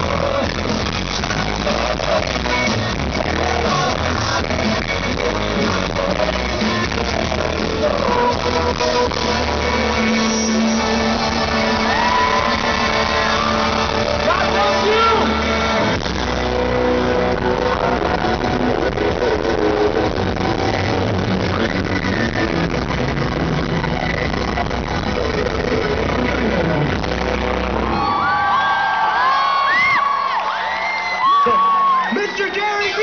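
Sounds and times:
crowd cheering and whooping: 0:00.0 - 0:33.0
live concert music: 0:00.0 - 0:33.0.

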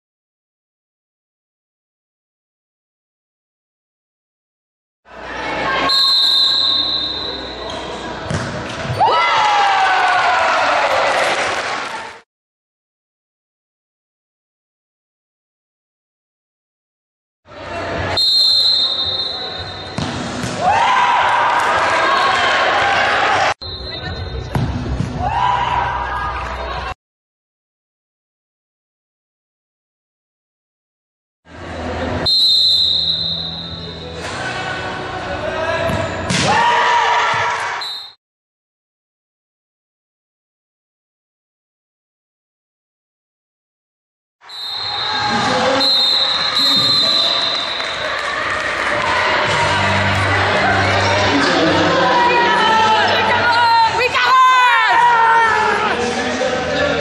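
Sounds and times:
crowd shouting and cheering: 0:05.1 - 0:12.2, 0:17.5 - 0:27.0, 0:33.1 - 0:38.1, 0:44.4 - 0:57.0
referee's whistle: 0:05.8 - 0:07.9, 0:18.1 - 0:20.0, 0:23.6 - 0:24.5, 0:32.2 - 0:34.2, 0:37.8 - 0:38.2, 0:44.4 - 0:48.1
ball being kicked: 0:08.3 - 0:09.0.

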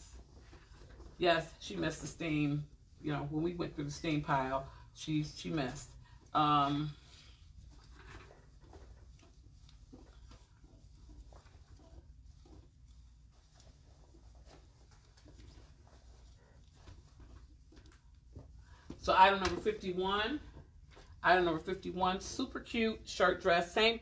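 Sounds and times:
cloth rustling: 0:00.0 - 0:22.5.

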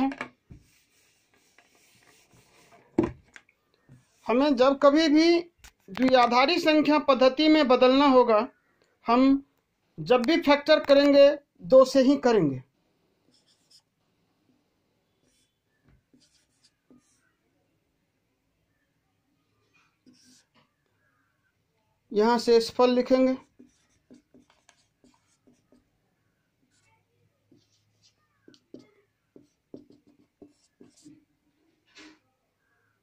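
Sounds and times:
marker pen scratching on whiteboard: 0:00.0 - 0:03.1, 0:03.8 - 0:04.6, 0:13.3 - 0:13.9, 0:15.2 - 0:17.4, 0:19.8 - 0:20.8, 0:23.3 - 0:25.9, 0:26.6 - 0:31.3.

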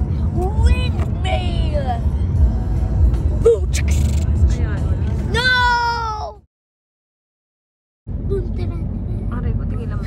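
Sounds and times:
car rumbling on the road: 0:00.0 - 0:06.4, 0:08.1 - 0:10.0.

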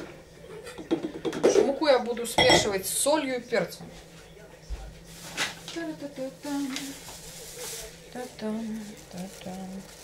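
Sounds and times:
plastic bag crinkling: 0:05.1 - 0:10.0.

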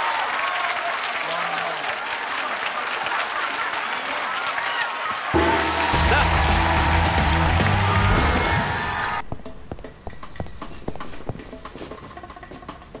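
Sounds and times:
music with heavy bass: 0:05.4 - 0:08.9.

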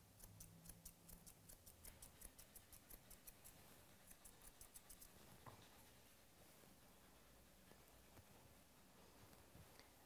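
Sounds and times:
shears snipping dog fur: 0:00.0 - 0:06.0.

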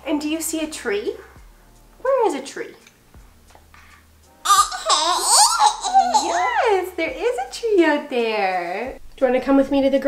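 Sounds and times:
baby laughing: 0:04.4 - 0:06.8.

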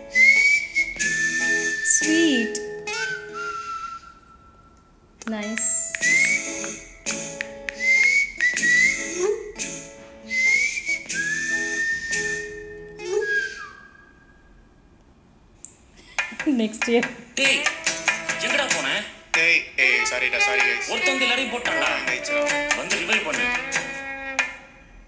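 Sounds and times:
whistled melody: 0:00.0 - 0:04.9, 0:05.7 - 0:14.6.

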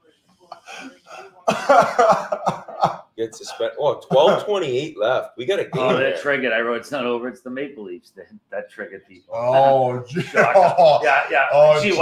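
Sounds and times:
man coughing loudly: 0:01.5 - 0:04.4.

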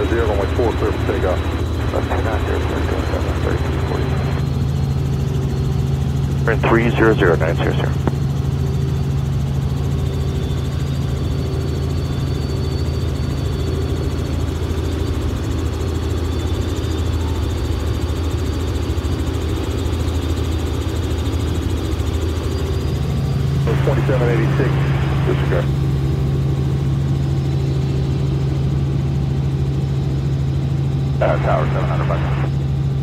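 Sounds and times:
faint high whine: 0:00.0 - 0:33.0
helicopter cabin drone: 0:00.0 - 0:33.0.

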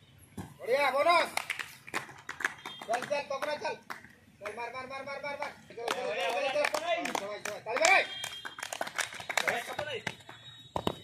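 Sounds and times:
men talking: 0:00.6 - 0:01.4, 0:02.9 - 0:08.2, 0:09.3 - 0:10.2.

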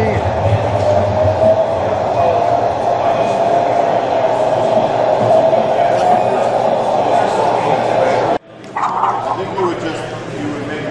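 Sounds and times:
steady tone: 0:00.0 - 0:08.4
indistinct background voices: 0:00.0 - 0:10.9.

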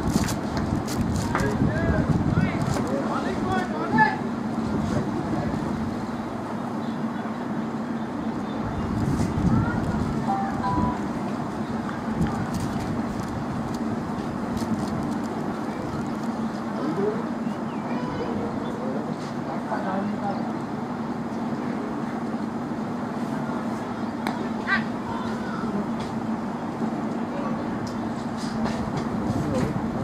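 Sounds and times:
steady outdoor rumble: 0:00.0 - 0:30.0.

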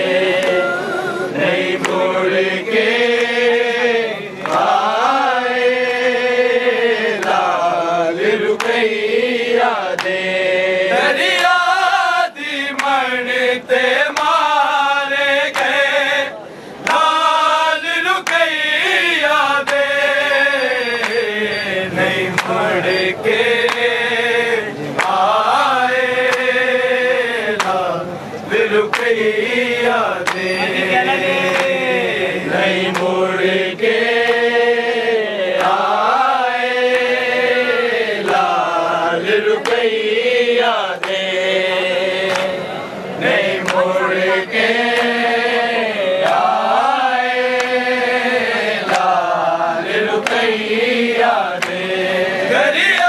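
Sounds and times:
men chanting a lament: 0:00.0 - 0:53.0.

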